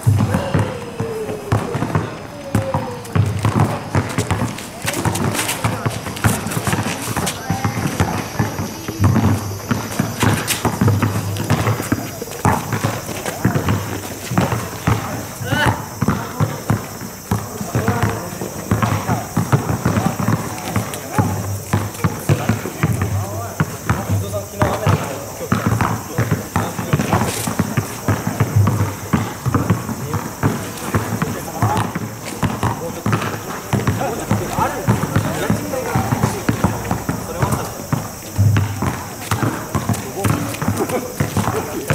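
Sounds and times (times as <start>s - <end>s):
basketball dribbling on asphalt: 0.0s - 41.9s
sneaker footsteps: 0.0s - 41.9s.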